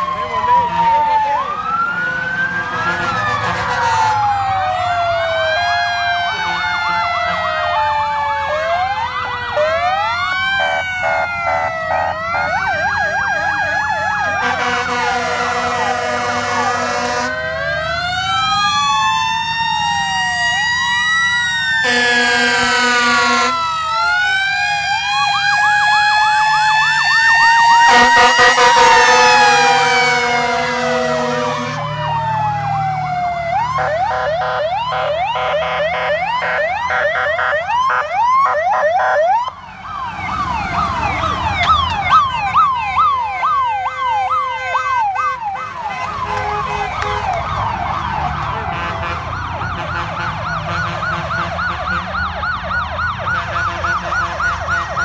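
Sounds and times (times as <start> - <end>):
sirens wailing and yelping: 0.0 - 55.0
long blaring horn blasts: 2.6 - 4.3, 8.4 - 17.7, 21.8 - 23.8, 27.8 - 32.0, 33.8 - 37.6, 44.4 - 52.3, 53.3 - 55.0.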